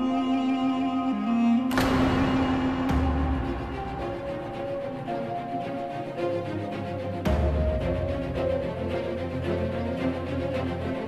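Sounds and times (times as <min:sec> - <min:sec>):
sharp hit: 0:01.7 - 0:05.2.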